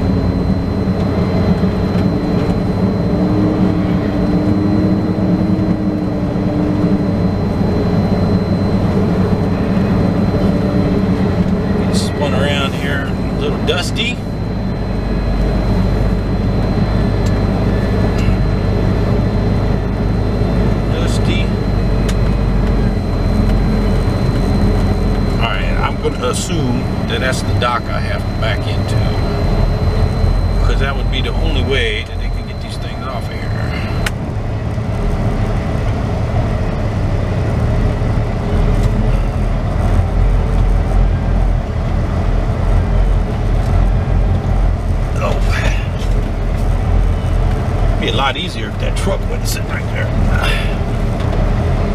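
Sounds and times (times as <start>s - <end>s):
diesel truck engine rumbling: 0.0s - 51.9s.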